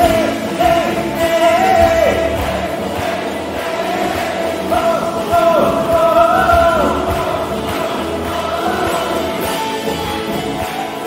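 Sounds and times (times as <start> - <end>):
man singing: 0.0 - 10.0
acoustic guitar: 0.0 - 11.0
higher harmony voice: 0.0 - 11.0.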